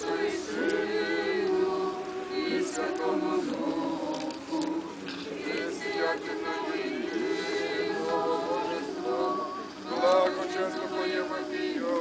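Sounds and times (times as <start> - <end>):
group singing unaccompanied chant: 0.0 - 12.0.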